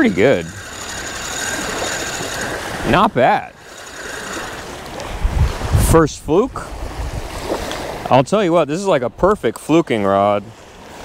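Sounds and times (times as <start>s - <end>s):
fishing reel whirring: 0.0s - 5.6s
water noise: 0.0s - 11.0s
wind: 0.0s - 11.0s.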